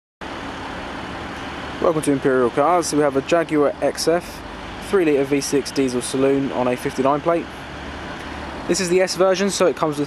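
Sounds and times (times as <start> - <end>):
man talking: 1.8 - 7.6, 8.7 - 10.0.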